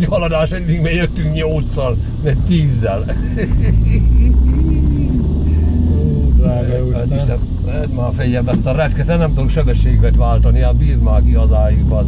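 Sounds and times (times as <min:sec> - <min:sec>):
car rumbling on rough road: 0:00.0 - 0:12.0.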